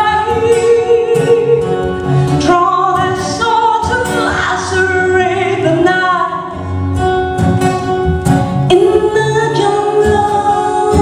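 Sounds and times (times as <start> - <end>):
woman singing into a microphone: 0.0 - 6.8, 8.6 - 11.0
backing music: 0.0 - 11.0.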